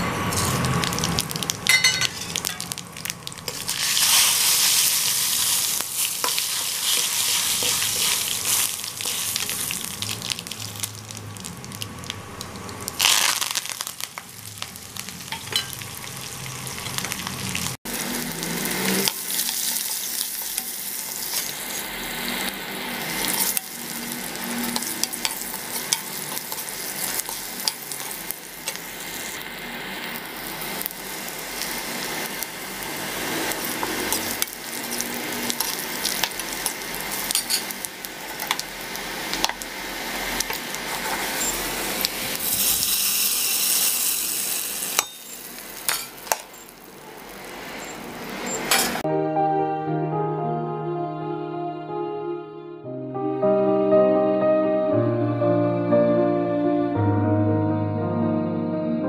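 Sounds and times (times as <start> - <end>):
oil sizzling and crackling: 0.0 - 49.0
spoon stirring: 5.4 - 9.8, 33.7 - 37.8.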